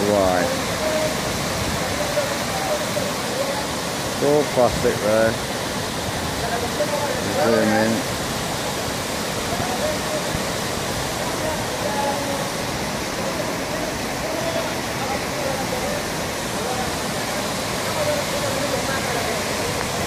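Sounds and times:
river water rushing over rocks: 0.0 - 20.0.

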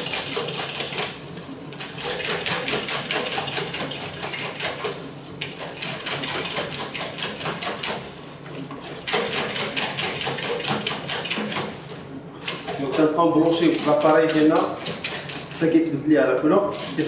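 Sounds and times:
wire whisk rattling in metal bowl: 0.0 - 15.8, 16.7 - 17.0.

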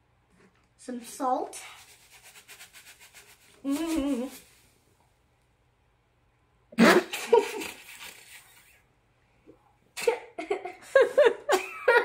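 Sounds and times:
girl giggling: 3.6 - 4.4, 7.0 - 7.8, 10.0 - 12.0.

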